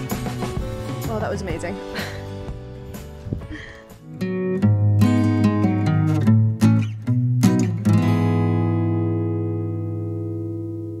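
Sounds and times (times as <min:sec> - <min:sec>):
acoustic guitar strums: 0:04.0 - 0:10.9.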